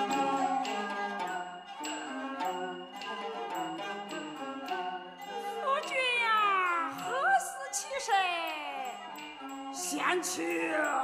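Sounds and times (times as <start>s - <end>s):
chinese string ensemble music: 0.0s - 11.0s.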